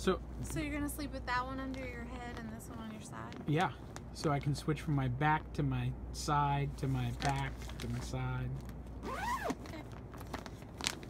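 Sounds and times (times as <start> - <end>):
plastic packaging crinkling: 7.1 - 11.0
sharp plastic crackles: 7.1 - 11.0.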